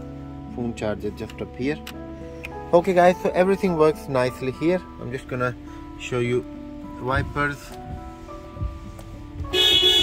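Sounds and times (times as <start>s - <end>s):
background music: 0.0s - 10.0s
soft low thumps: 7.0s - 9.6s
car horn: 9.5s - 10.0s.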